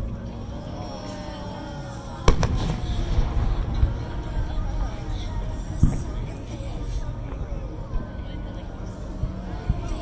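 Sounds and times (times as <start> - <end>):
firework shell boom: 2.3 - 3.8
firework crack: 2.3 - 6.2.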